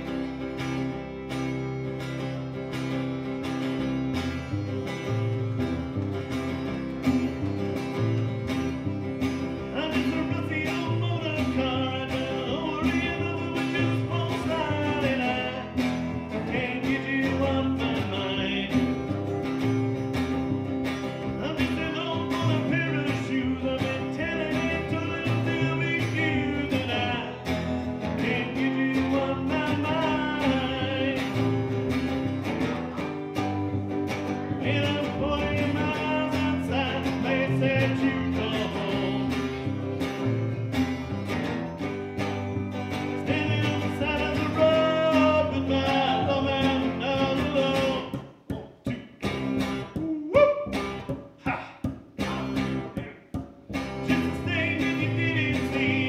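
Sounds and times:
acoustic guitar strumming: 0.0 - 56.0
plucked double bass: 0.0 - 56.0
man singing: 9.6 - 19.5, 21.2 - 33.1, 33.8 - 40.7, 42.7 - 53.4, 54.0 - 56.0.

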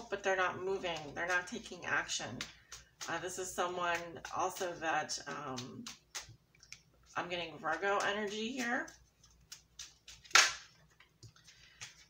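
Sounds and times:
cards snapping: 8.9 - 12.0.

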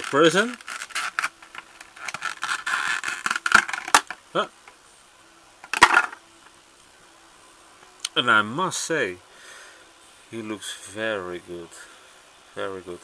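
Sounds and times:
plastic packaging crinkling: 0.0 - 4.2.

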